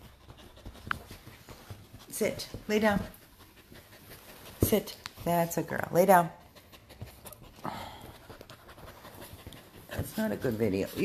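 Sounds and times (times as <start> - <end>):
soft rustling: 0.0 - 6.0, 6.6 - 11.0
dog panting: 0.0 - 11.0.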